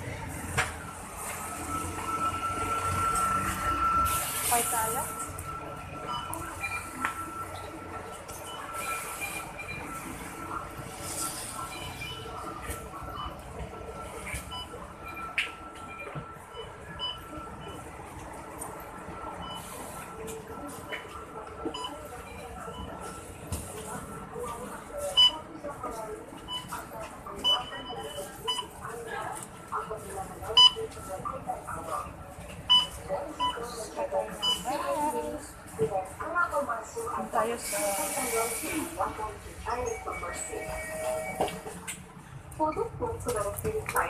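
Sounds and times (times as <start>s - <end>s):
electronic beeps: 0.9s - 17.9s
faint background chatter: 3.3s - 44.0s.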